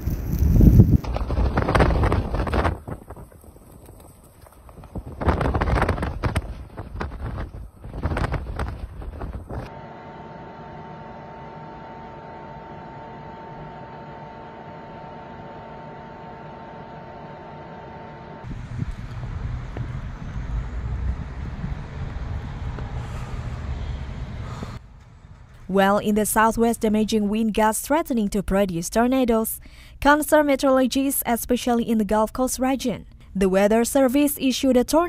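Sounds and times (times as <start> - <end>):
gusty wind buffeting microphone: 0.0 - 9.7, 18.4 - 25.7
steady hum with high tone: 8.1 - 35.0.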